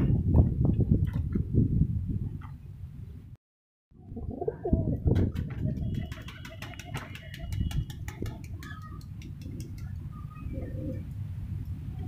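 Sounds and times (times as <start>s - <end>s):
pigeons cooing: 4.1s - 7.6s, 8.6s - 11.1s.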